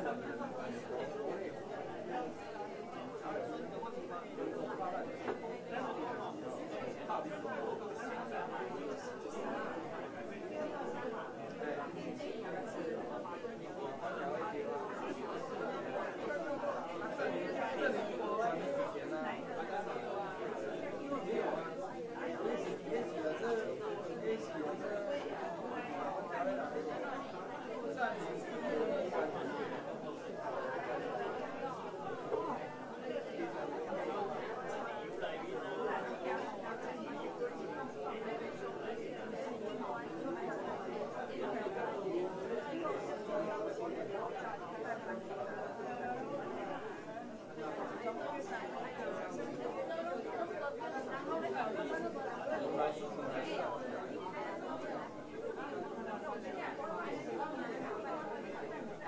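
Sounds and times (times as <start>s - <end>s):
hubbub of overlapping conversation: 0.0s - 59.0s.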